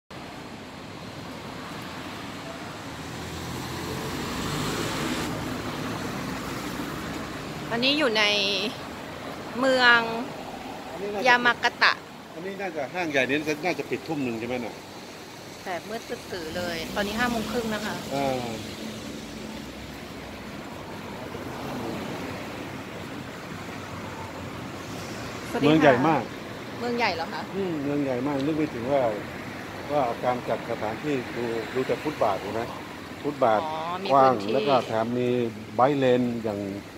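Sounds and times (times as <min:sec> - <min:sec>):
street traffic hiss: 0:00.1 - 0:36.9
car passing by: 0:00.4 - 0:36.8
car driving past: 0:01.8 - 0:07.7, 0:16.1 - 0:26.8.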